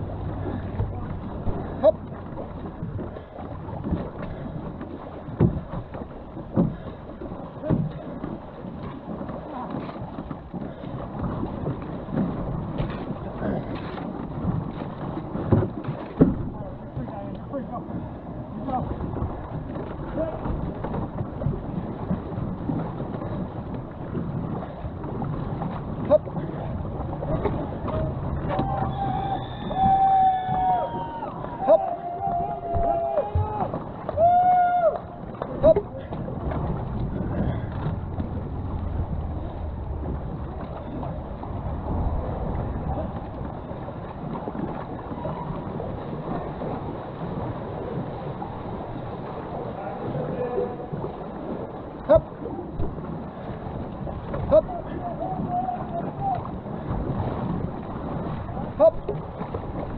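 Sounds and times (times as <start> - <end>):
water rushing and splashing: 0.0 - 59.9
wind on microphone: 0.0 - 59.9
people calling out: 28.5 - 35.8, 54.5 - 56.4.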